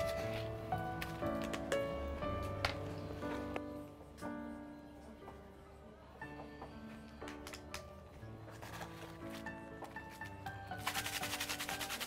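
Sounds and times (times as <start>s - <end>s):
soft background music: 0.0s - 12.0s
fast scraping rubbing noise: 10.8s - 12.0s.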